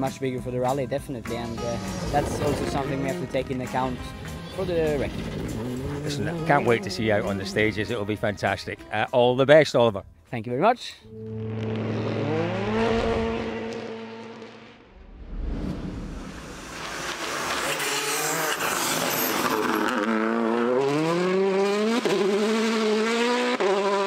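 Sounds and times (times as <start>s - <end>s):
rally car engine revving: 1.4s - 8.0s, 11.1s - 14.9s, 16.0s - 24.0s
rushing noise: 14.9s - 19.2s.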